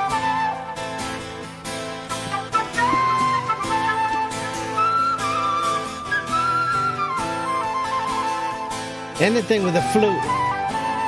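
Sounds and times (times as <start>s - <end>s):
acoustic guitar: 0.0s - 11.0s
flute playing slow melody: 0.0s - 11.0s
rock band accompaniment: 1.2s - 6.0s.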